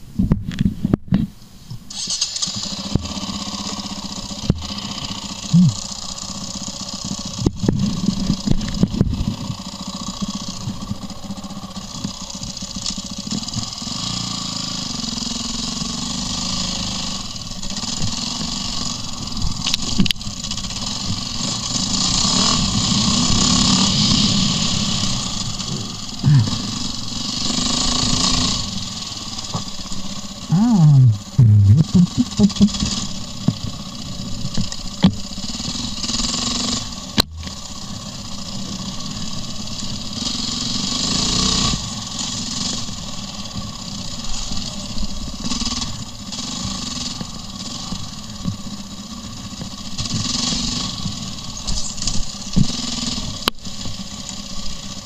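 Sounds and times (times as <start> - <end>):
motorcycle engine revving: 1.9 - 55.0.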